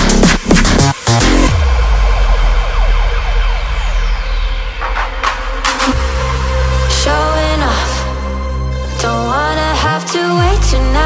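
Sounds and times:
loud electronic hit: 0:00.0 - 0:08.3
synth sweep: 0:00.0 - 0:09.7
siren-like synth glides: 0:01.5 - 0:08.8.

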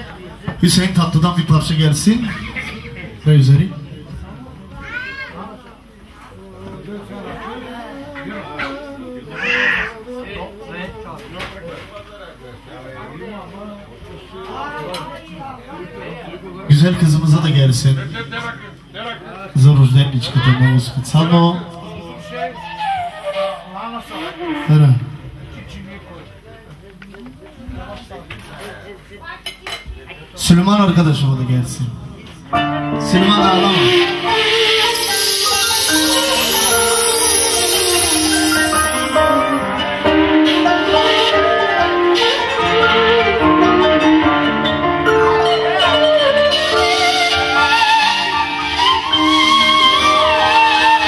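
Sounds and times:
faint background voices: 0:00.0 - 0:16.8
faint background chatter: 0:00.0 - 0:51.0.

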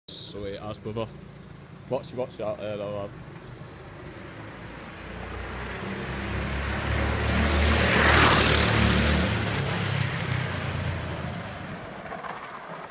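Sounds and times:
go-kart engine driving past: 0:03.1 - 0:12.9.

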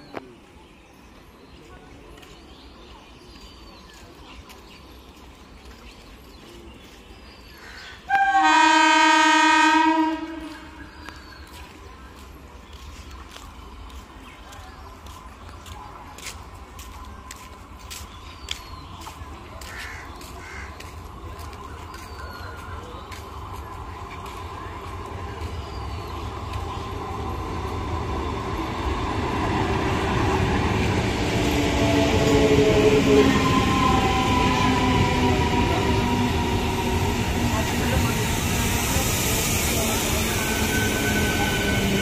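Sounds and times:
train wheels and motors rumbling: 0:10.1 - 0:42.0.

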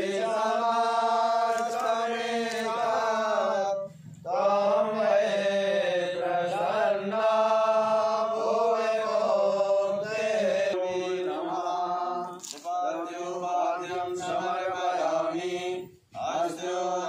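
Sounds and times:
men chanting in unison: 0:00.0 - 0:17.0.

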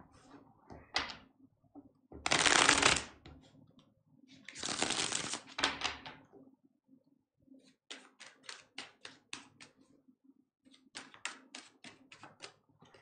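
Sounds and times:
cards being shuffled: 0:02.3 - 0:03.1, 0:04.5 - 0:05.8, 0:07.9 - 0:09.5.

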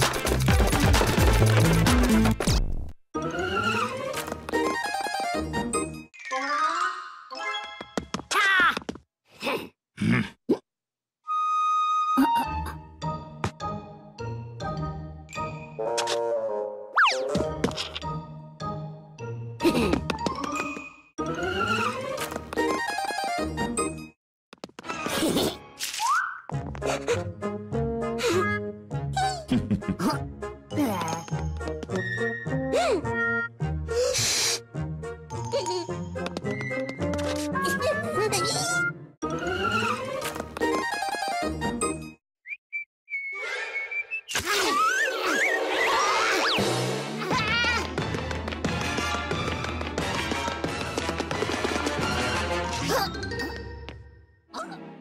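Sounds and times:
cartoon whistle: 0:42.7 - 0:46.6.

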